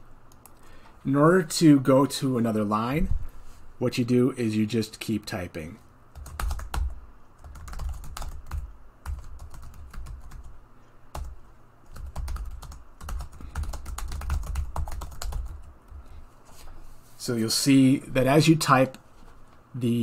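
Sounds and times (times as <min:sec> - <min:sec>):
typing on computer keyboard: 0:06.2 - 0:10.5, 0:11.1 - 0:15.7.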